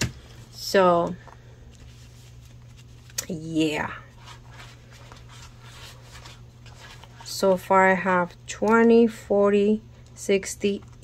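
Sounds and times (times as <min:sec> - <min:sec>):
paper bills rustling: 0:01.6 - 0:07.3.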